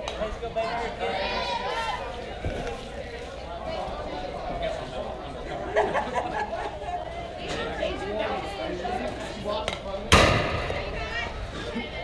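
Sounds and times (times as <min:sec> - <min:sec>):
spectators chattering: 0:00.0 - 0:12.0
loud sharp crack: 0:10.1 - 0:10.9.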